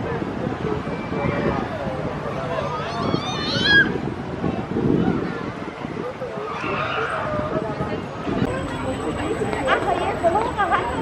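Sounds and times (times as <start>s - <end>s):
murmur of background voices: 0.0s - 11.0s.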